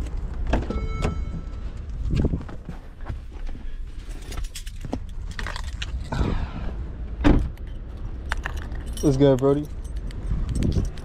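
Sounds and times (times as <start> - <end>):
car keys jangling: 4.0 - 6.2, 7.4 - 11.0.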